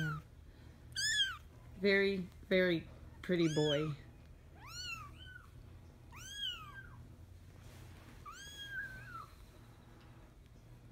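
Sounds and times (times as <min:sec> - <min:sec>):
kitten mewing: 0:01.0 - 0:01.5.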